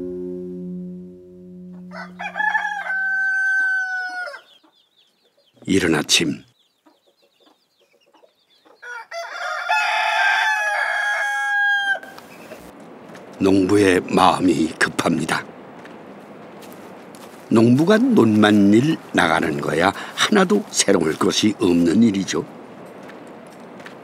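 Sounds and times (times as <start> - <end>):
rooster crowing: 1.7 - 4.5, 8.8 - 12.3.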